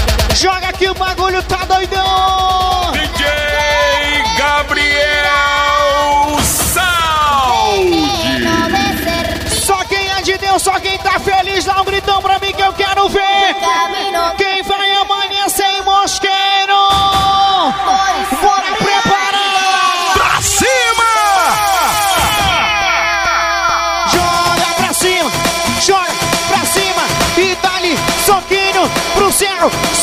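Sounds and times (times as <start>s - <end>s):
electronic beat with rapid notes: 0.0s - 10.2s, 16.8s - 30.0s
falling pitched sweep: 6.4s - 15.2s
held synth tone: 7.6s - 9.7s.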